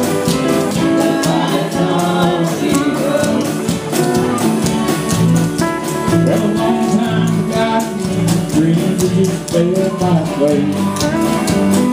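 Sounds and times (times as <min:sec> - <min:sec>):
drum kit beat: 0:00.0 - 0:11.9
electric bass: 0:00.0 - 0:11.9
strummed acoustic guitars: 0:00.0 - 0:11.9.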